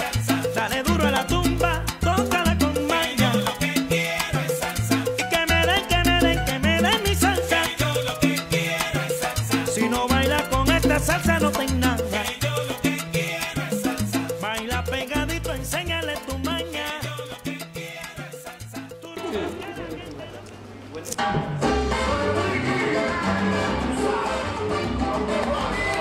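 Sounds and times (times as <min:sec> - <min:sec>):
repeating bass line: 0:00.0 - 0:18.0
person singing: 0:00.0 - 0:20.5, 0:21.2 - 0:26.0
busy percussion: 0:00.0 - 0:26.0
salsa band playing: 0:00.0 - 0:26.0.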